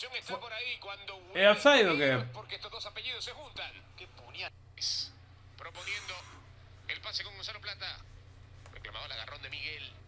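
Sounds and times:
steady low hum: 1.1s - 10.0s.

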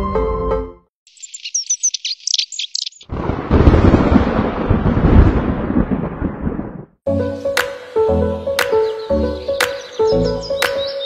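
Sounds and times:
high bird chirps: 1.1s - 3.1s, 8.0s - 11.0s
thunder rumble: 3.0s - 7.0s.

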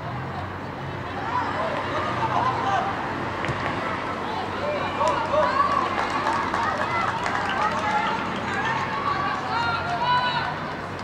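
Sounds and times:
raised voices shouting: 3.8s - 10.6s.

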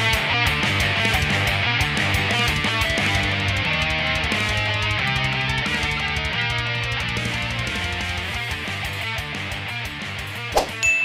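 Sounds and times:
death metal electric guitar music: 0.0s - 10.8s
high steady ding: 10.7s - 11.0s.

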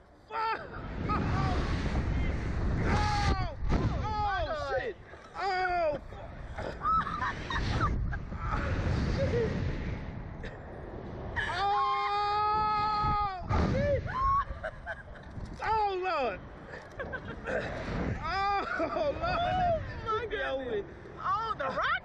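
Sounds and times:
people screaming and yelling: 0.2s - 10.0s, 11.3s - 14.9s
wind buffeting microphone: 0.4s - 22.0s.

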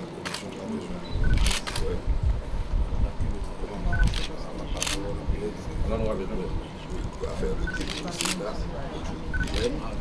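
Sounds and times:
camera shutter clicks: 1.3s - 1.9s, 4.0s - 5.0s, 7.8s - 8.4s.

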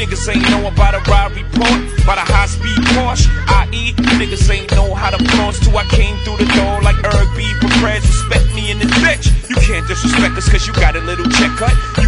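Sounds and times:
bass drum hits: 0.0s - 9.9s
rapping over a beat: 0.0s - 12.0s.

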